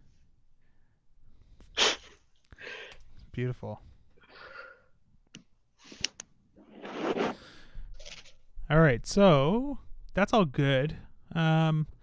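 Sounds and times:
soft breathing: 2.5 - 5.0, 7.3 - 8.1.

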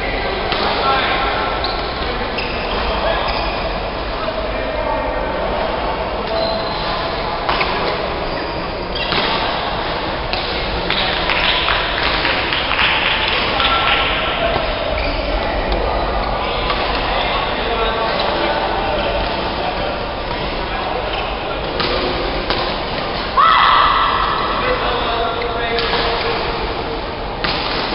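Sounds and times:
voices chattering: 0.0 - 27.4.

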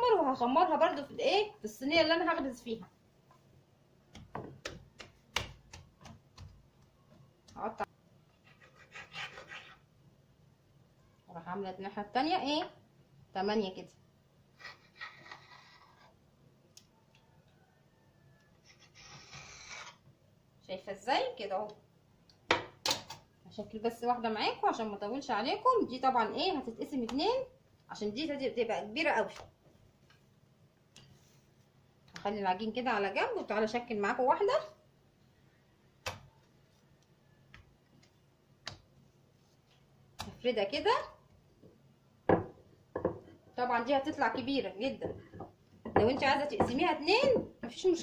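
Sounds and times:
hands tapping dough on marble: 4.1 - 7.8, 45.0 - 47.6
knife scraping dough on stone: 8.4 - 9.9.

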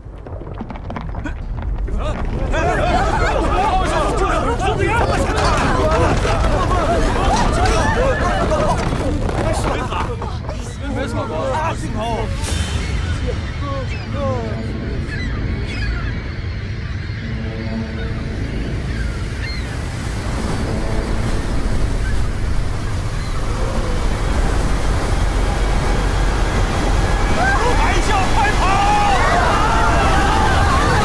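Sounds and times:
rushing roar of water wave: 1.9 - 13.4, 14.0 - 31.0
people shouting: 2.0 - 10.2, 26.3 - 31.0.

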